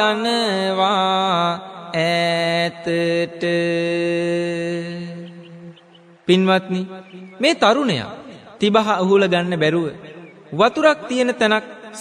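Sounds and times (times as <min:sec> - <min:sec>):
man chanting melodic verses: 0:00.0 - 0:12.0.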